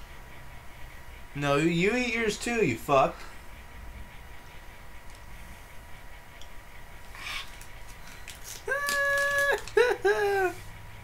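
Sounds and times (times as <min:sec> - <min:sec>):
man's disgusted whine and groan: 0:08.7 - 0:10.7.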